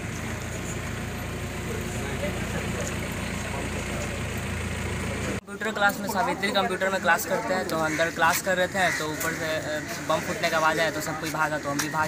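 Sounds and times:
street noise: 0.0 - 12.0
crowd talking indistinctly: 1.4 - 12.0.

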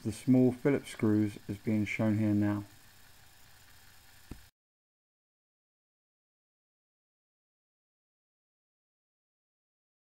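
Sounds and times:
faint room hiss: 0.0 - 4.5.

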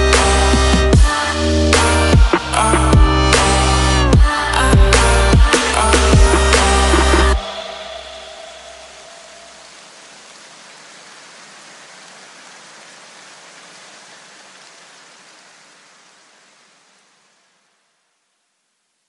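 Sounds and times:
electronic music: 0.0 - 9.5
steady hiss: 3.3 - 19.0.

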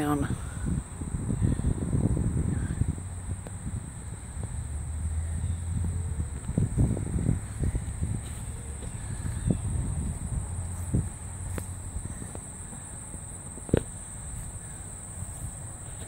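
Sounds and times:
high-pitched insect drone: 0.0 - 16.0
wind rumble on microphone: 0.0 - 16.0.

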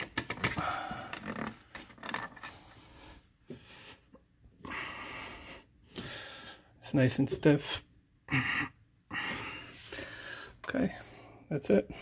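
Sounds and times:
man breathing hard: 0.5 - 1.4, 2.4 - 6.8, 8.3 - 12.0.

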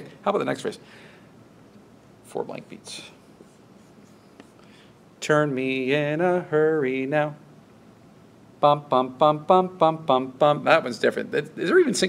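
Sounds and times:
marker strokes on whiteboard: 3.3 - 4.6.

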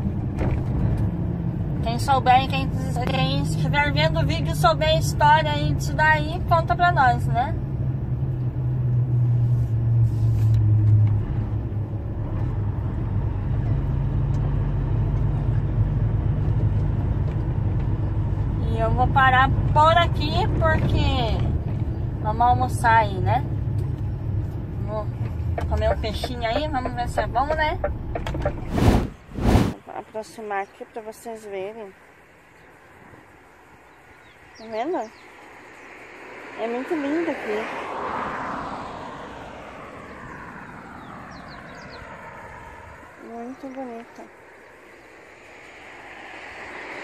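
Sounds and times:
road noise inside vehicle: 0.0 - 47.0
loud rushing noise bursts: 28.6 - 29.8.

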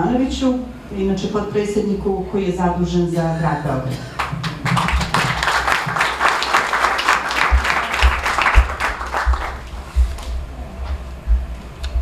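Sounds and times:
audience applauding: 4.2 - 9.8
low thumps: 7.5 - 12.0.

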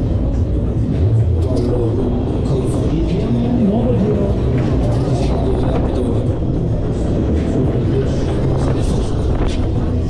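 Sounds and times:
running machinery rumble: 0.0 - 10.0.

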